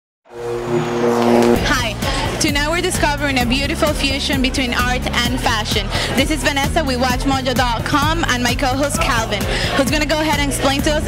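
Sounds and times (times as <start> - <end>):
whooshing noise: 0.3 - 2.4.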